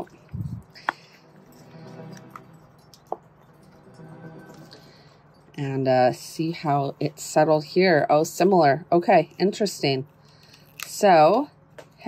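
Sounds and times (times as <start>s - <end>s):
soft background music: 0.0s - 9.9s.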